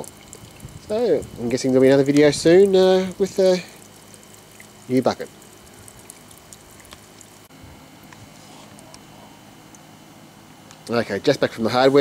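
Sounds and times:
small ticks: 5.4s - 7.4s.

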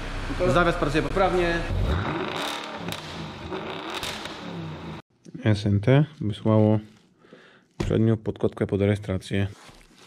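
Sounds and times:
car engine revving: 0.0s - 5.0s.

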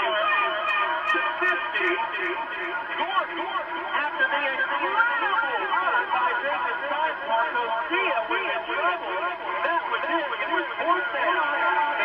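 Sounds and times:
muffled men talking: 0.0s - 12.0s.

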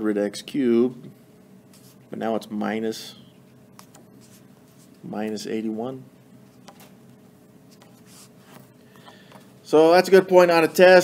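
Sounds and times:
stylus scratching on tablet screen: 3.8s - 5.0s, 7.7s - 8.7s.

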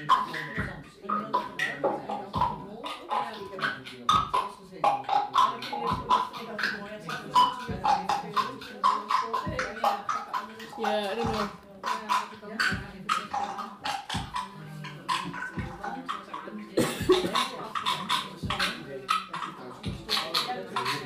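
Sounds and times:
chopped voice-like sounds: 0.0s - 21.0s
bass drum: 0.2s - 21.0s.

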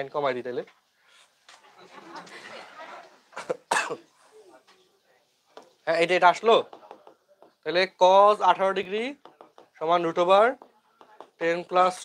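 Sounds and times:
person coughing: 3.4s - 4.1s.

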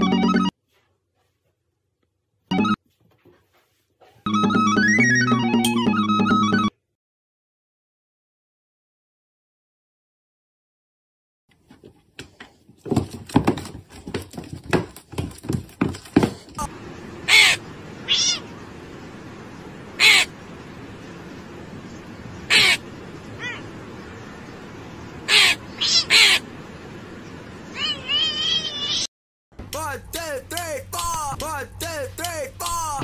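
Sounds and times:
short wavering calls: 16.6s - 18.8s, 19.9s - 20.7s, 21.9s - 26.6s
crow cawing: 17.2s - 18.5s, 20.0s - 20.3s, 22.5s - 22.8s, 25.3s - 26.4s.

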